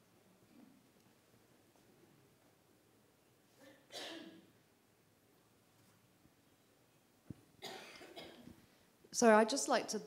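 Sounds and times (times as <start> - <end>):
person coughing into microphone: 3.6 - 4.5, 7.6 - 8.6.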